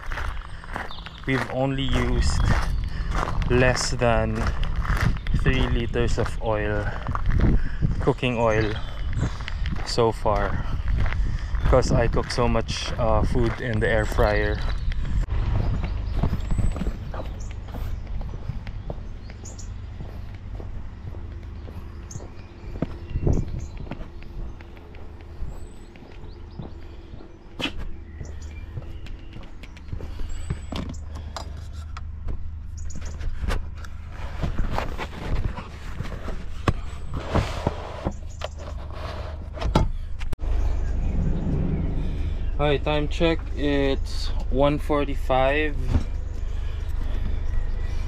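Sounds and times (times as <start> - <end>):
footsteps: 0.0 - 39.5
steady low rumble: 0.0 - 48.0.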